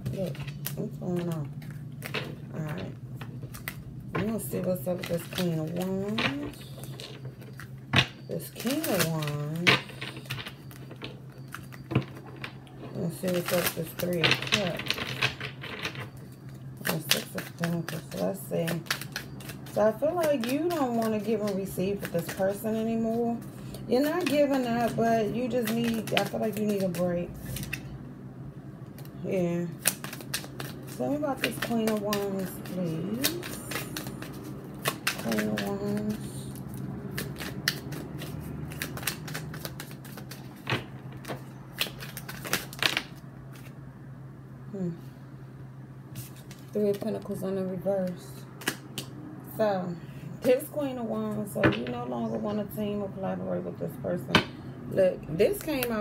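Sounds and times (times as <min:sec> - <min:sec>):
steady low hum: 0:00.0 - 0:56.0
cards being shuffled: 0:08.4 - 0:16.1, 0:16.8 - 0:27.9, 0:29.8 - 0:43.8, 0:46.1 - 0:47.4
cards clicking and flicking: 0:25.5 - 0:27.8, 0:29.8 - 0:36.4, 0:37.1 - 0:43.7.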